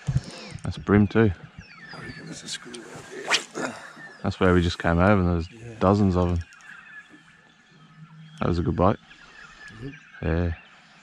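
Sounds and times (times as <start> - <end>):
sharp rising bird chirp: 0.2 - 11.0
faint clicks: 6.1 - 7.0.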